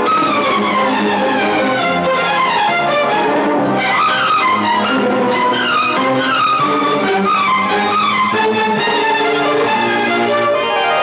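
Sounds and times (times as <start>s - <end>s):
instrumental film music: 0.0s - 11.0s.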